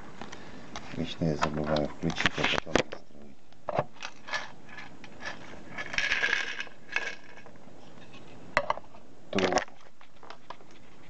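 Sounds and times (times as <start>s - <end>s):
small parts rattling in plastic bowl: 4.0s - 7.6s.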